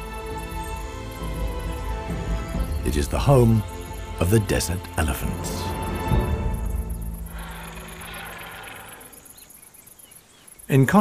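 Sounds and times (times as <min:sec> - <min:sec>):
background music: 0:00.0 - 0:08.9
insects chirping: 0:00.0 - 0:11.0.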